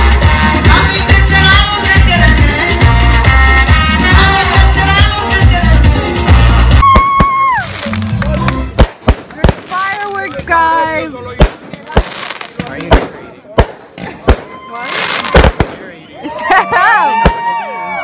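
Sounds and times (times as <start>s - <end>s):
fireworks bursting: 6.2s - 16.0s, 17.1s - 17.5s.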